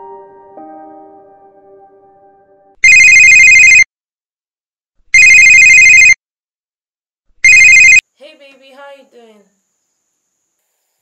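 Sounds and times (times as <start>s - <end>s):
soft music: 0.0s - 2.8s
electronic phone ringtone trilling: 2.8s - 3.9s, 5.2s - 6.2s, 7.4s - 8.0s.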